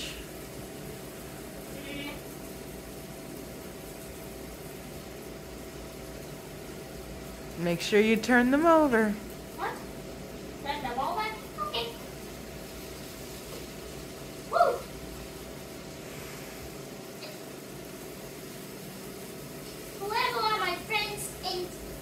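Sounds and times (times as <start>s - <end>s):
patties frying in a pan: 0.0s - 22.0s.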